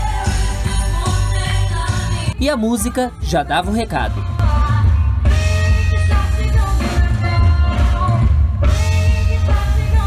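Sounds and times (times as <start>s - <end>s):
backing music with heavy bass: 0.0s - 10.0s.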